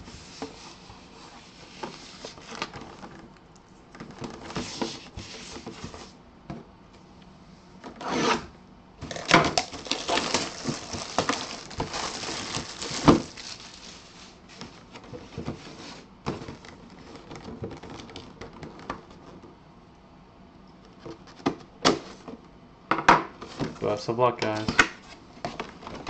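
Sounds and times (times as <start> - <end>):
plastic wrap crinkling and tearing: 9.1 - 14.4.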